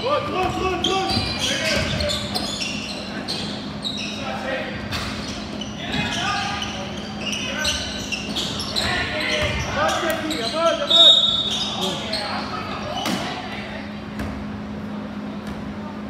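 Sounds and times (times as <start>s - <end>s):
players and spectators shouting: 0.0s - 14.0s
basketball bouncing on court: 0.3s - 3.6s, 7.6s - 10.2s
high shoe squeal: 0.6s - 13.3s.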